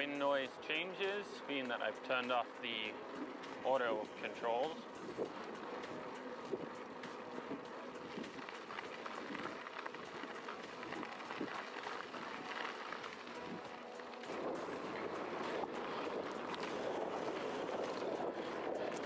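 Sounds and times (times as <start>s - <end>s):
bike tyres rolling on gravel: 0.0s - 19.0s
wind buffeting microphone: 2.8s - 19.0s.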